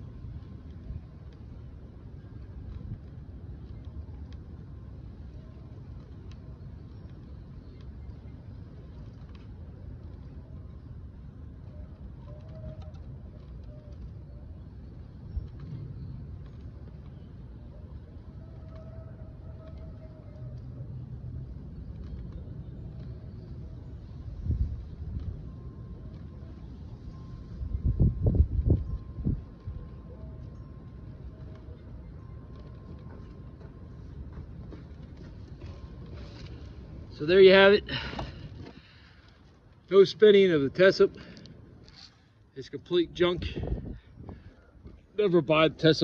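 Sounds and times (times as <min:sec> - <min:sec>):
wind buffeting microphone: 0:00.0 - 0:42.0, 0:42.8 - 0:46.0.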